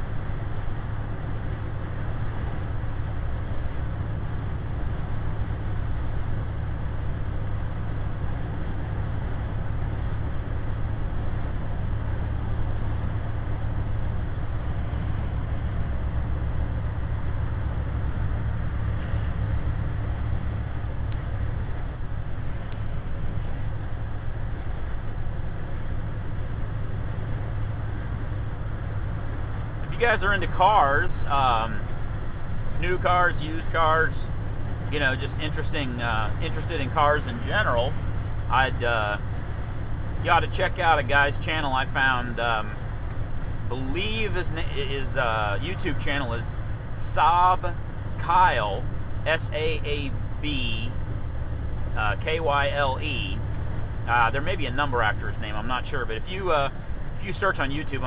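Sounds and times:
diesel truck engine drone: 0:00.0 - 0:58.0
tyre and road noise: 0:00.0 - 0:58.0.

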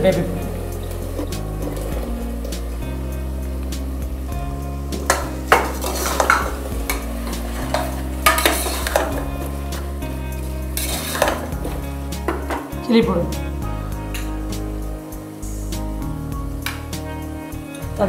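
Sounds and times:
background music sustained notes: 0:00.0 - 0:18.0
masala sizzling: 0:00.0 - 0:18.0
metal spoon scraping pot: 0:05.1 - 0:09.6, 0:10.8 - 0:11.6.

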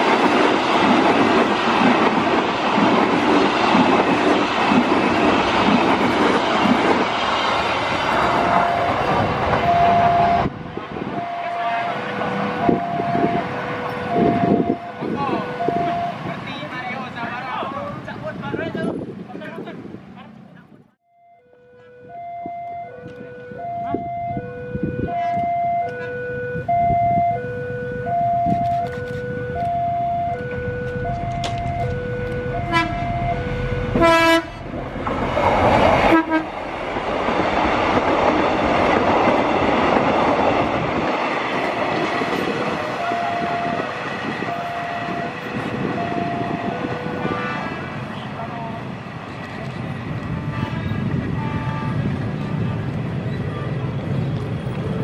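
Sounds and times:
train passing at speed: 0:00.0 - 0:20.7, 0:21.7 - 0:55.0
train horn toot: 0:08.2 - 0:10.5, 0:30.3 - 0:34.7, 0:36.1 - 0:36.6, 0:43.0 - 0:48.8, 0:50.3 - 0:52.8
two-tone level crossing alarm: 0:08.2 - 0:16.4, 0:21.0 - 0:34.6, 0:41.9 - 0:47.6.

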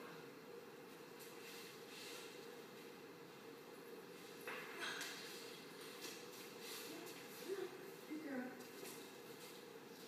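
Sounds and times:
woman speaking softly: 0:07.0 - 0:08.7.

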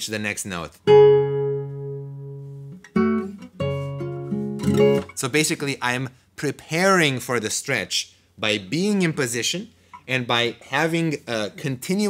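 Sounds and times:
classical guitar plucked: 0:00.8 - 0:05.2.

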